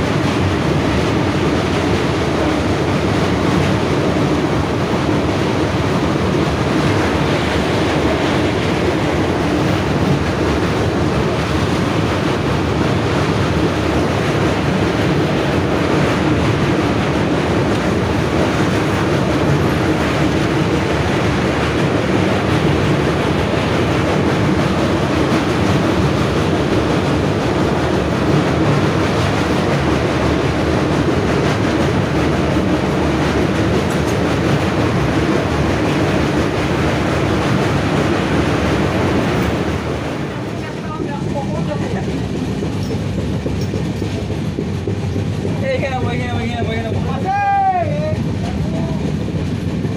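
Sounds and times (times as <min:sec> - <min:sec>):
train wheels clattering on rails: 0:00.0 - 0:49.9.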